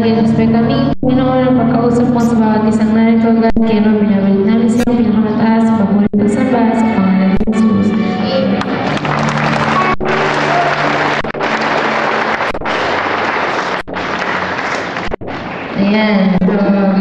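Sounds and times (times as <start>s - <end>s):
live rock band playing: 8.2s - 15.5s.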